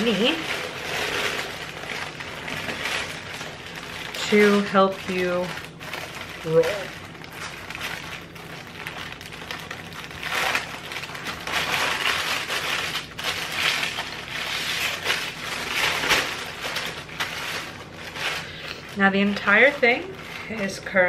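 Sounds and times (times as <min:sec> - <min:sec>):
parchment paper crinkling: 0:00.0 - 0:21.0.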